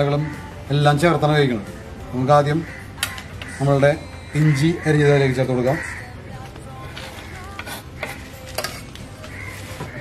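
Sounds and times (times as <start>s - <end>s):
knife scraping wooden cutting board: 7.0s - 8.9s.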